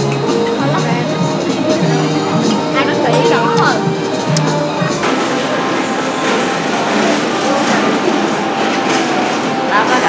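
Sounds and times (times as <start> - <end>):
rushing mall background noise: 0.0 - 10.0
faint voices: 0.4 - 8.8.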